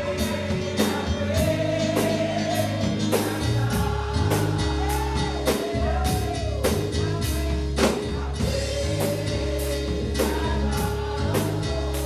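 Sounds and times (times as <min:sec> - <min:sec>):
drum and cymbal beat: 0:00.0 - 0:12.0
gospel singing with keyboard: 0:00.0 - 0:12.0.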